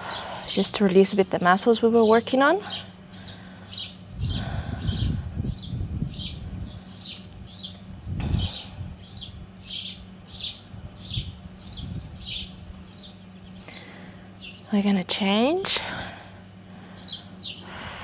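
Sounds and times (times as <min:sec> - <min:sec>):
small bird chirping: 0:02.0 - 0:14.8, 0:16.4 - 0:18.0.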